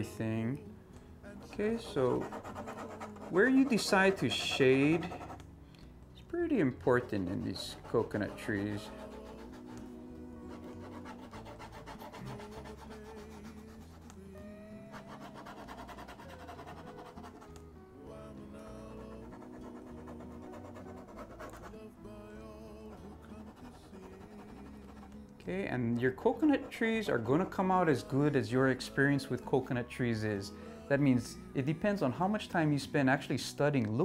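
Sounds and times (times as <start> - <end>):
soft background music: 0.0 - 34.0
marker scratching on paper: 1.4 - 5.4, 6.8 - 14.2, 14.9 - 17.6, 19.0 - 21.8, 22.9 - 25.2, 26.3 - 27.6.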